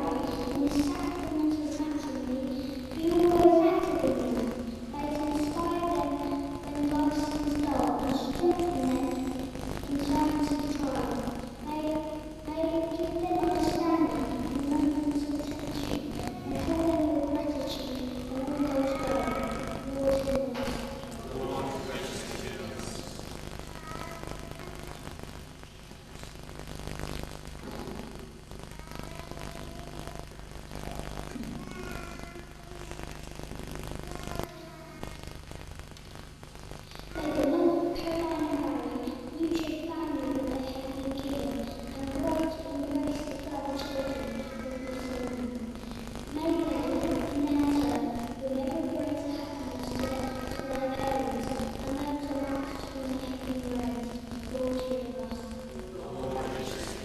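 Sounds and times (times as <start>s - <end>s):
faint voice: 0.0s - 25.2s, 28.7s - 33.2s, 34.0s - 35.2s, 36.9s - 57.0s
low electrical hum: 0.0s - 57.0s.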